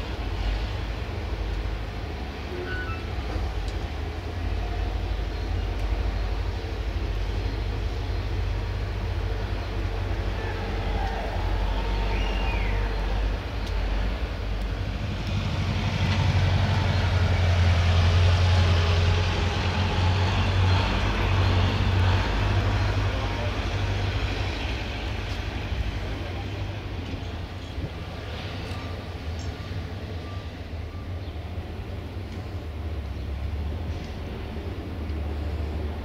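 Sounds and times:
engine rumbling: 0.0s - 36.0s.

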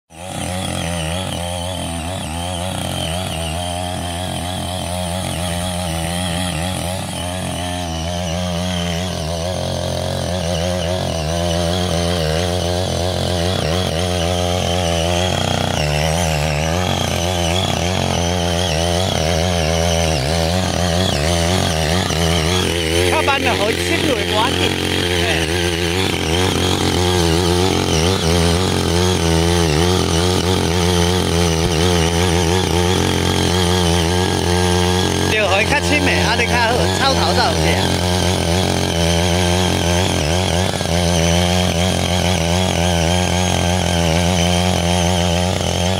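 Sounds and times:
small engine running under load: 0.1s - 45.9s
tines churning grass and soil: 0.1s - 45.9s.

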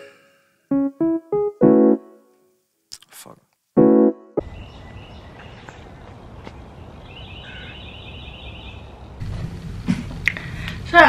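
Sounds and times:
songbird trill: 4.4s - 9.0s.

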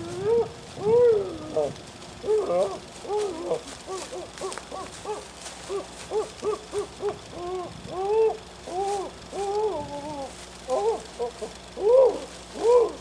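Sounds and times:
person hooting: 0.0s - 13.0s.

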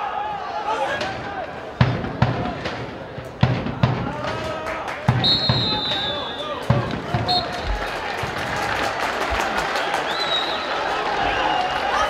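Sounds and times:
crowd noise: 0.0s - 12.0s
referee's whistle blasts: 5.2s - 7.7s.

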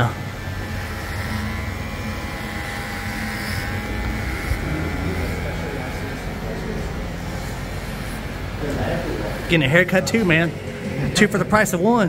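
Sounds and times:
electric hair clipper buzzing: 0.0s - 11.2s.

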